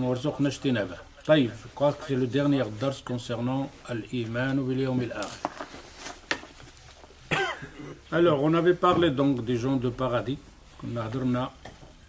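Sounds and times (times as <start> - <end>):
man coughing: 7.3 - 8.1.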